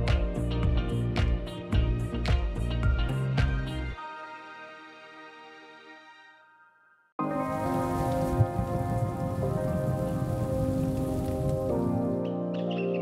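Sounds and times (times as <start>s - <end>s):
rain-like hiss: 7.2s - 12.2s.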